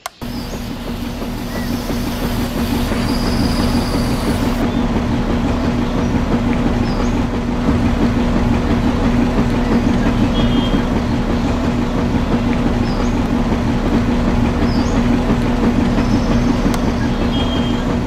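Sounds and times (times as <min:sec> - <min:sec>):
small electric motor humming: 0:00.1 - 0:04.6
mixer drum rattling: 0:00.2 - 0:05.2.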